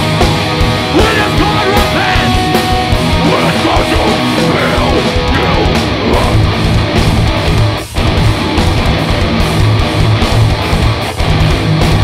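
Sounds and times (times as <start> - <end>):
bass guitar: 0.0 - 12.0
distorted electric guitars: 0.0 - 12.0
drums: 0.0 - 12.0.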